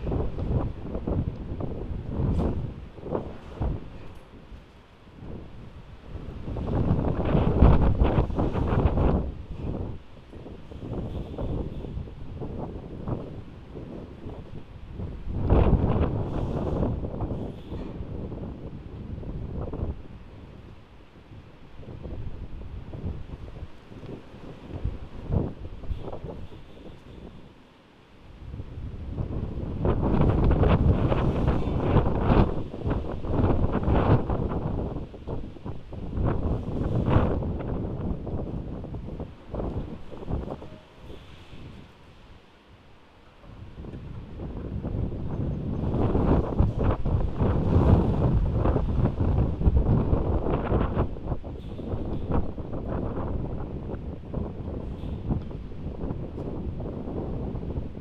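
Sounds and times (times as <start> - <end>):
strong wind buffeting microphone: 0.0 - 58.0.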